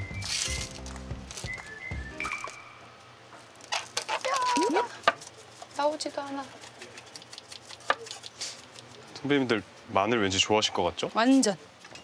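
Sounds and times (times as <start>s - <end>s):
light background music: 0.0s - 2.8s
comic whistling sound effect: 1.4s - 2.9s
salt shaker rattling: 5.2s - 9.0s.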